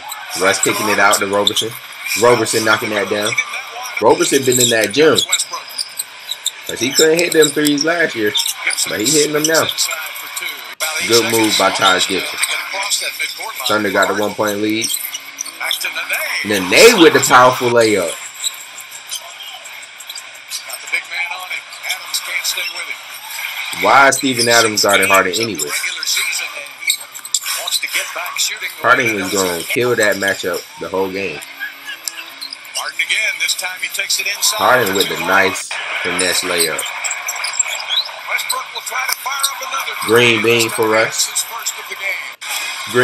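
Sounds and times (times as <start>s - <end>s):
faint commentator voice: 0.0s - 5.7s, 6.7s - 14.9s, 15.6s - 18.2s, 20.6s - 36.9s, 37.6s - 43.0s
arena crowd noise: 0.0s - 43.0s.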